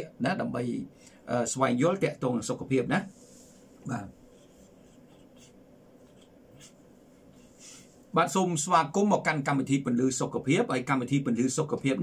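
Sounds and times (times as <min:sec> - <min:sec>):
soft rustling: 0:03.0 - 0:08.2.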